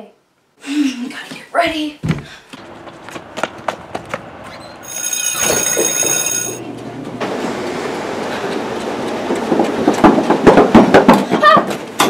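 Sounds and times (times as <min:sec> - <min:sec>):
train clattering: 0:02.6 - 0:12.0
train railcars rumbling: 0:02.6 - 0:12.0.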